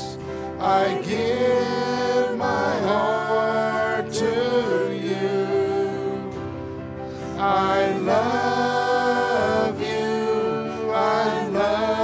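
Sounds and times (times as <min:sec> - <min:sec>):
voices singing long notes: 0:00.0 - 0:12.0.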